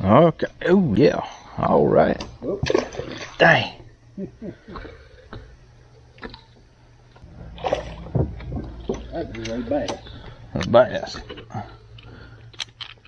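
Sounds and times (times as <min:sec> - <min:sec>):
steady low hum: 0:00.0 - 0:13.0
indistinct voices: 0:07.2 - 0:12.5
sharp knocks: 0:07.3 - 0:09.3.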